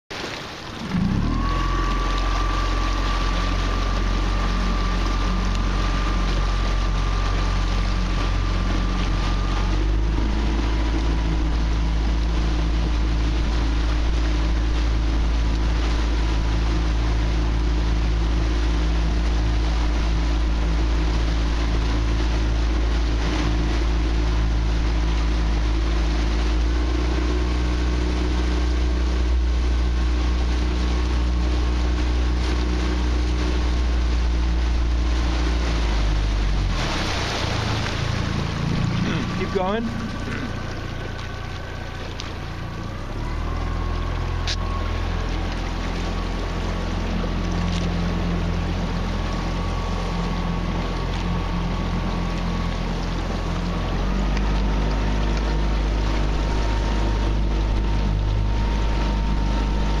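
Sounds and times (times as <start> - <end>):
small outboard motor running: 0.1 - 60.0.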